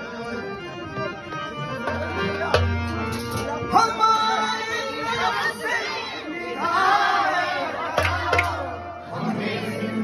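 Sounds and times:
harmonium holding a note: 0.0s - 8.0s.

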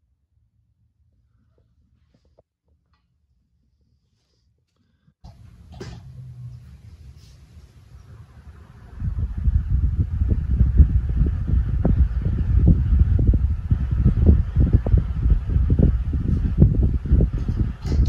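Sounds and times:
faint steady hum: 3.4s - 18.0s
fan airflow buffeting microphone: 4.9s - 18.0s.

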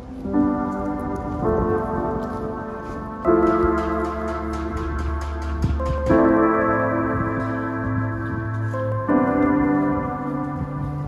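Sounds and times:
low rain-like noise: 0.0s - 11.0s
sustained keyboard chords: 0.0s - 11.0s.

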